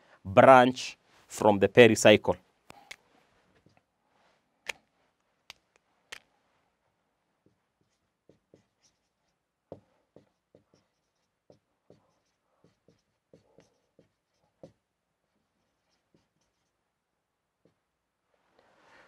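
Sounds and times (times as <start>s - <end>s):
marker squeaking on whiteboard: 7.4s - 16.8s.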